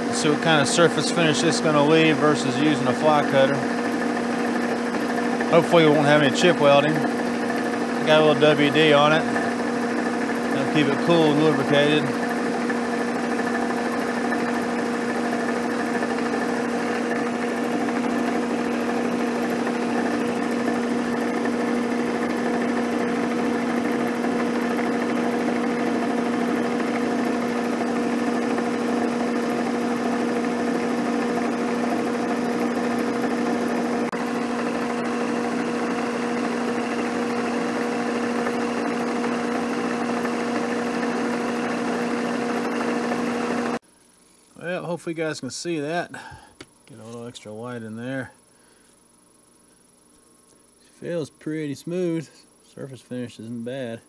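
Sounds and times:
milling machine cutting metal: 0.0 - 43.8.

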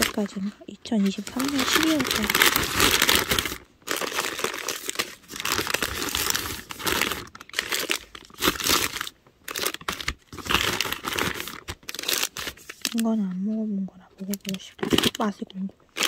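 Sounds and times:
bag and wrappers crinkling: 0.0 - 13.5, 14.2 - 16.0.

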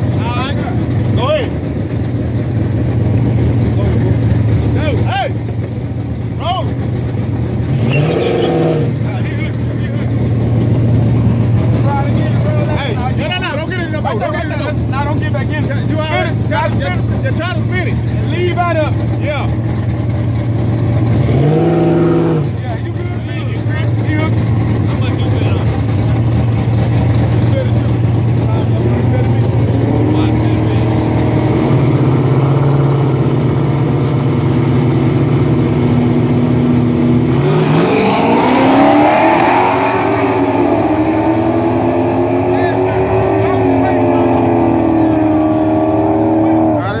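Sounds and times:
car engines idling and revving: 0.0 - 47.0
cars launching and accelerating: 7.5 - 12.0, 20.6 - 22.7, 25.4 - 47.0.

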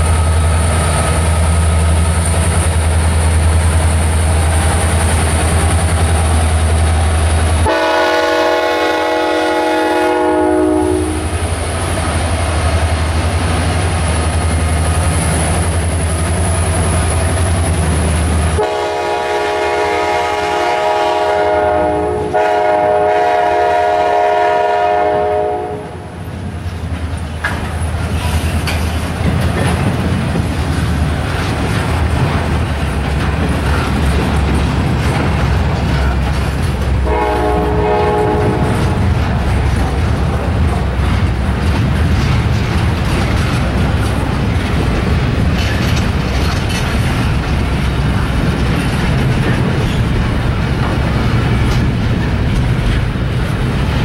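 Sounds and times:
diesel locomotives rumbling: 0.0 - 54.0
rolling clatter of freight cars: 0.0 - 54.0
locomotive air horn: 7.6 - 11.4, 18.5 - 26.1, 37.0 - 39.0.

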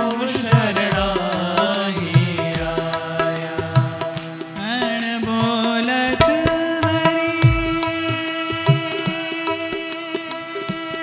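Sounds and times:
sustained instrumental accompaniment: 0.0 - 10.9
man singing a devotional chant: 0.0 - 11.0
drum strokes: 6.0 - 8.3.

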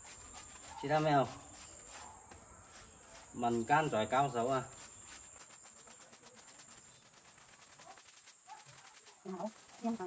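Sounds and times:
hands rubbing lather through hair: 0.0 - 10.0.

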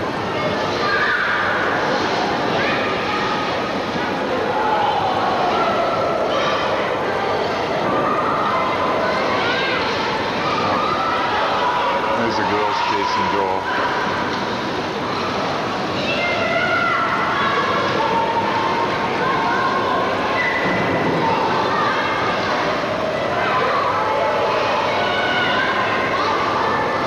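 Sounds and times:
background hubbub: 0.0 - 27.0
children chattering and calling: 0.0 - 27.0
steady background noise: 0.0 - 27.0.

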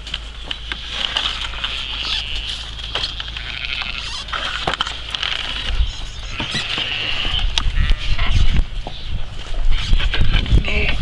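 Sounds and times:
sheep bleating: 1.4 - 4.5, 6.2 - 8.3
wind rumbling on microphone: 3.1 - 11.0.

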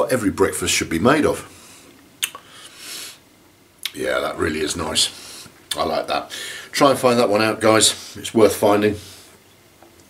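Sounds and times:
man speaking: 0.0 - 1.5, 3.9 - 9.2
lip smacks and mouth clicks: 2.0 - 2.5
short breath: 6.3 - 6.7.

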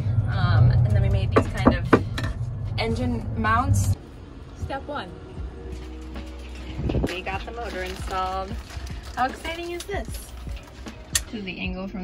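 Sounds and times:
low drone: 0.0 - 9.2
background music with held notes: 4.6 - 12.0.

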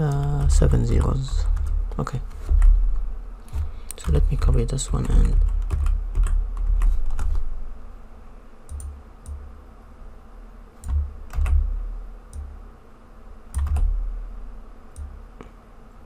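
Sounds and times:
computer keyboard keys clicking: 0.0 - 2.8, 3.9 - 7.4, 8.7 - 9.4, 10.8 - 11.7, 13.5 - 13.9.

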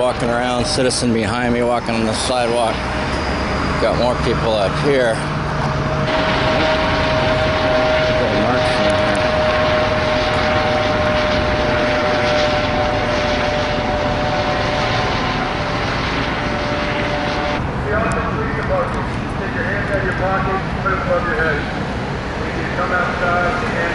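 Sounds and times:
helicopter engine and rotor roar: 0.0 - 23.9
whining tone: 0.0 - 23.9.

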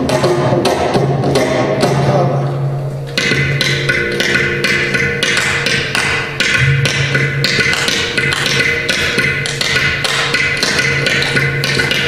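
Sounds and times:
hand drum strokes: 3.1 - 12.0
clay pot percussion: 3.2 - 12.0.

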